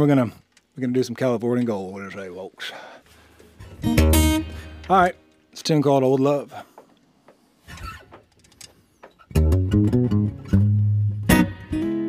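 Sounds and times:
acoustic guitar chord strummed: 0:03.8 - 0:05.3, 0:09.4 - 0:12.0.

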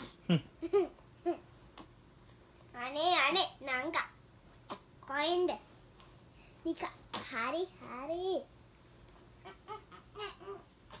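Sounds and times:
child's playful voice: 0:02.7 - 0:04.2, 0:05.0 - 0:05.7, 0:06.6 - 0:08.5.

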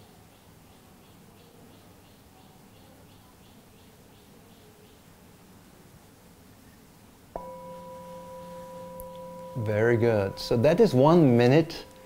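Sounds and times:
singing bowl struck and ringing: 0:07.4 - 0:12.0.

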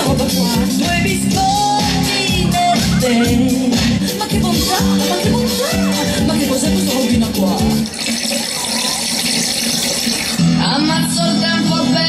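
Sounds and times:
music with a beat: 0:00.0 - 0:12.0
song: 0:00.0 - 0:12.0.

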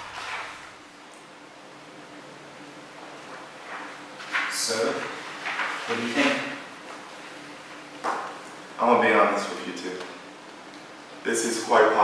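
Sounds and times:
paper rustling: 0:00.0 - 0:00.8, 0:03.2 - 0:07.5.

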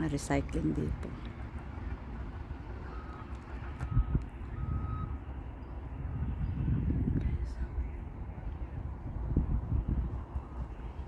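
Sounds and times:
reversing alarm beeping: 0:02.8 - 0:06.8, 0:10.3 - 0:11.0.

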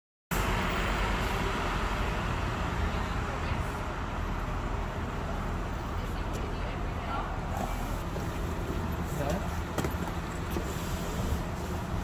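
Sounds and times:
bus engine idling: 0:00.3 - 0:12.0
people talking: 0:05.9 - 0:08.1.

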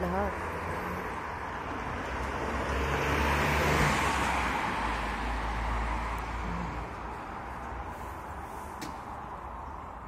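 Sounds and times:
vehicle passing by: 0:00.3 - 0:10.0.

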